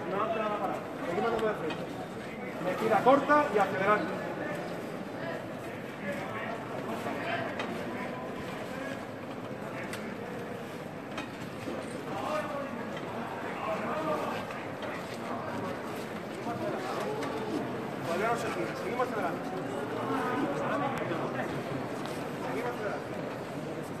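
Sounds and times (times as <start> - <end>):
low voices murmuring: 0.0 - 24.0.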